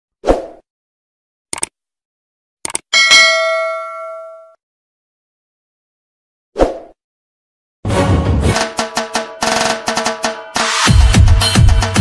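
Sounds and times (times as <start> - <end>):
quick clicks: 1.5 - 1.8, 2.6 - 2.9
bell ding: 3.0 - 4.6.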